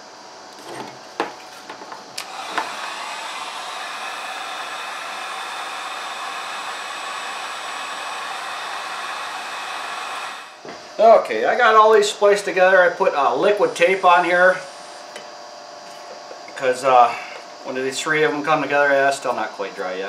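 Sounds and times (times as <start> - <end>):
heat gun blowing air: 2.2 - 10.7, 12.6 - 15.2.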